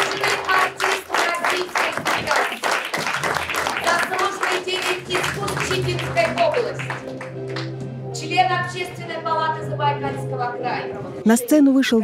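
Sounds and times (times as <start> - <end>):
people clapping: 0.0 - 7.9.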